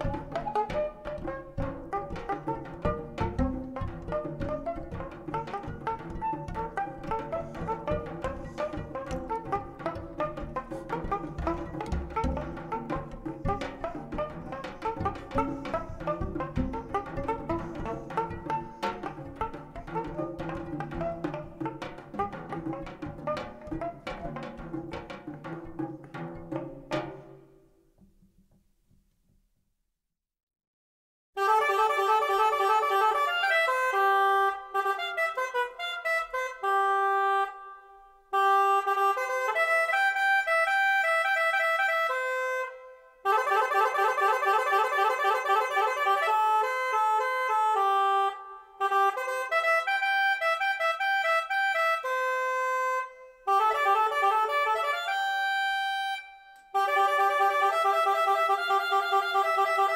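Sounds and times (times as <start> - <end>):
reed wind instrument melody: 0.0 - 24.7, 31.4 - 59.9.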